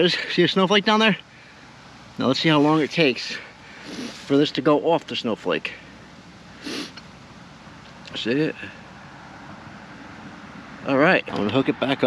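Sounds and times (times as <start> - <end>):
faint background noise: 0.0 - 12.0
short sniff: 3.4 - 4.3, 6.6 - 7.0.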